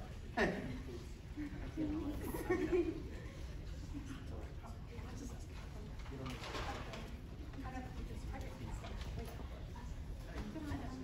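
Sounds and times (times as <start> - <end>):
low murmured talking: 0.0 - 11.0.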